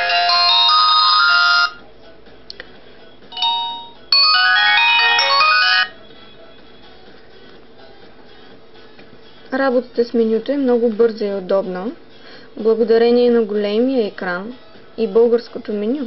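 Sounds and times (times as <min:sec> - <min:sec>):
phone electronic chime jingle: 0:00.0 - 0:01.8, 0:03.4 - 0:06.0.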